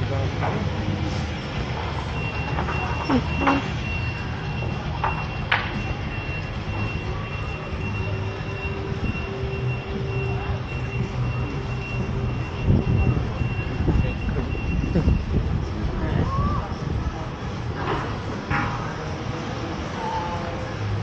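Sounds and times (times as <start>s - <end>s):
vehicle engine running low: 0.0s - 21.0s
high-pitched reversing beeps: 2.0s - 15.4s.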